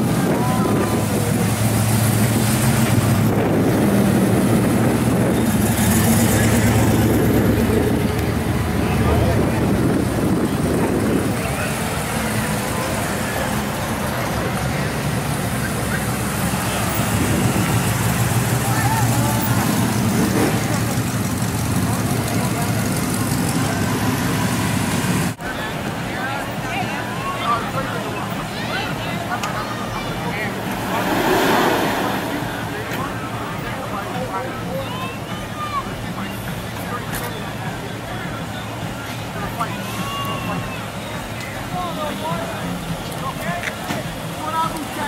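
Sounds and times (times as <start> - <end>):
cars rolling slowly past: 0.0 - 45.0
people talking: 0.0 - 45.0.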